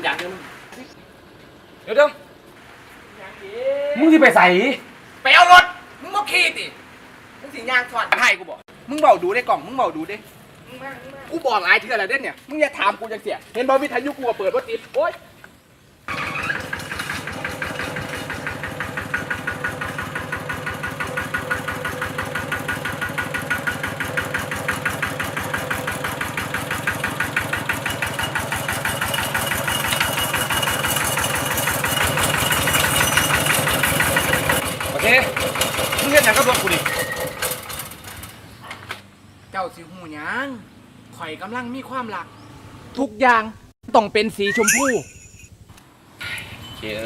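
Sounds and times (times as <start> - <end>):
small motorcycle engine: 16.1 - 38.4
voices: 39.5 - 45.4.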